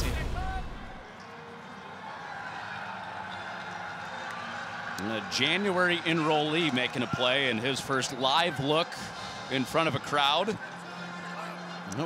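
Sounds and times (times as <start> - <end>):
scattered cheering: 0.0 - 12.0
people clapping: 1.0 - 12.0.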